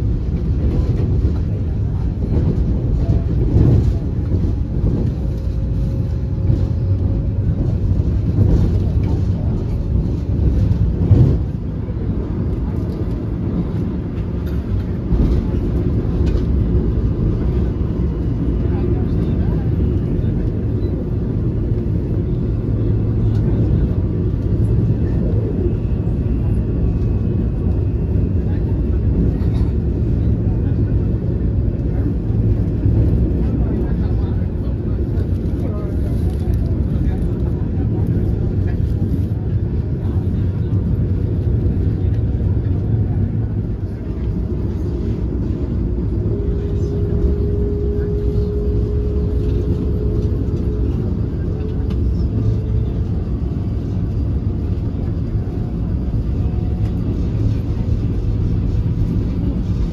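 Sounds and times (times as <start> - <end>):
train rumbling at speed: 0.0 - 59.9.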